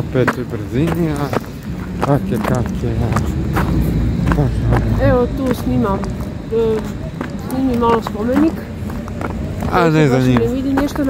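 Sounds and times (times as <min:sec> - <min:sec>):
street traffic rumble: 0:00.0 - 0:11.0
person talking: 0:04.2 - 0:08.7, 0:09.7 - 0:11.0.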